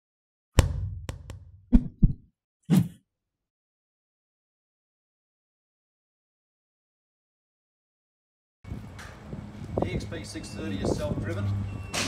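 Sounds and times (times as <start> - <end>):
sharp percussive hit: 0.6 - 2.0.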